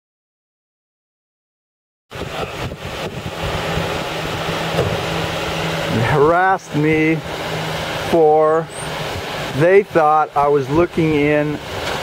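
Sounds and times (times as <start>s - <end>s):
wind noise on microphone: 2.1s - 8.1s
car engine idling: 2.1s - 12.0s.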